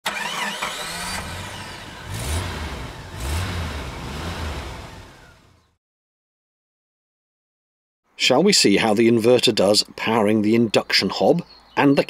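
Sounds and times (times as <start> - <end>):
engine starting and revving: 0.0 - 5.8.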